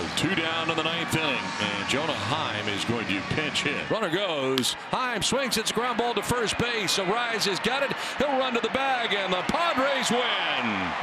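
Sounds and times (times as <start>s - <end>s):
man commentating: 0.0s - 11.0s.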